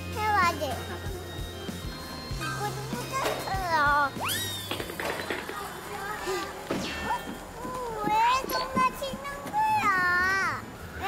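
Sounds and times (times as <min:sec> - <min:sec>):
rising slide whistle: 0:04.2 - 0:04.9.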